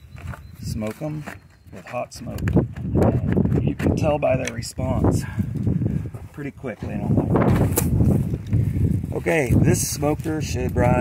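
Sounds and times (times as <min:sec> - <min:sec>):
wind buffeting microphone: 0:02.2 - 0:11.0.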